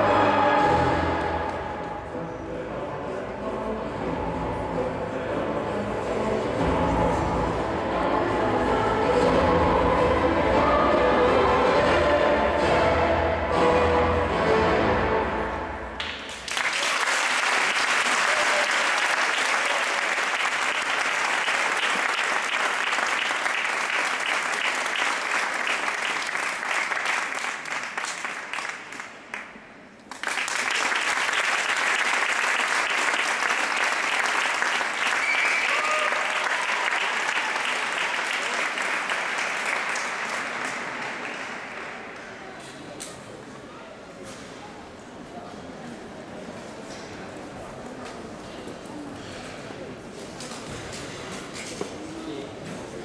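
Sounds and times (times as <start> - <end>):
music: 0.0 - 16.4
audience clapping: 16.0 - 42.6.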